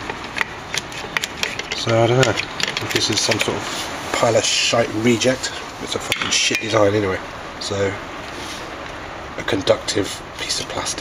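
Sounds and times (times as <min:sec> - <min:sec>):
handling clicks and taps: 0:00.0 - 0:03.6
steady background hiss: 0:00.0 - 0:11.0
man talking: 0:01.8 - 0:08.0, 0:09.3 - 0:11.0.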